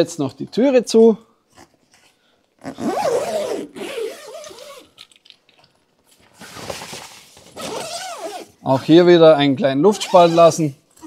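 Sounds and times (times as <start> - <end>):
zipper on tent fabric: 2.6 - 4.9, 7.6 - 8.6, 9.9 - 10.6.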